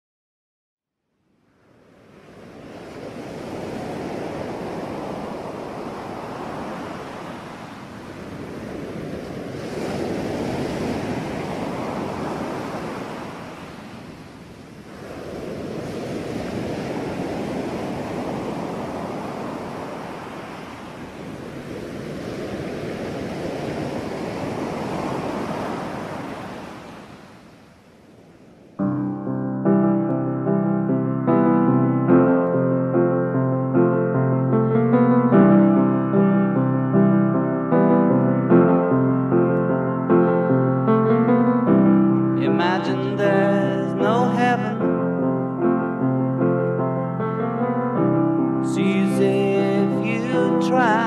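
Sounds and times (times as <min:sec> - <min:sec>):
waves breaking on beach: 0:01.6 - 0:29.0, 0:34.9 - 0:51.0.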